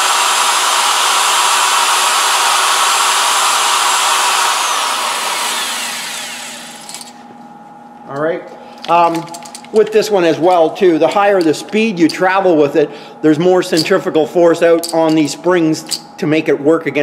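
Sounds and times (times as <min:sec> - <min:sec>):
electric drill whining: 0:00.0 - 0:07.2.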